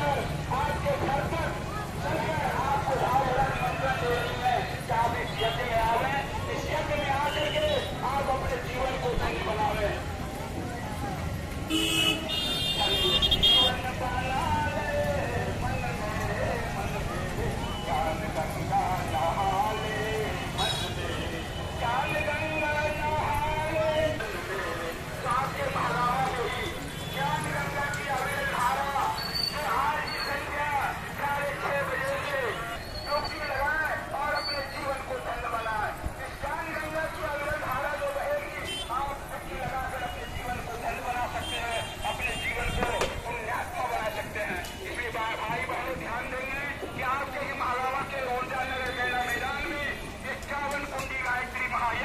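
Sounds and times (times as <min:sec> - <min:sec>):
low street rumble: 0:00.0 - 0:52.0
murmur of crowd voices: 0:00.0 - 0:52.0
vehicle horn honking: 0:11.7 - 0:13.8.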